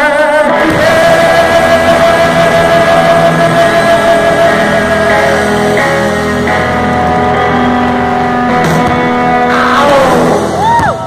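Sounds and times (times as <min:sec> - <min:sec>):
rock band with distorted guitars: 0:00.0 - 0:11.0.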